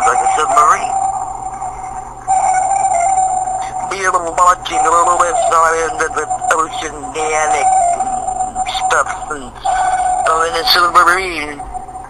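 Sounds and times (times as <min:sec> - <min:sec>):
steady mid-pitched held tone: 0:00.0 - 0:12.0.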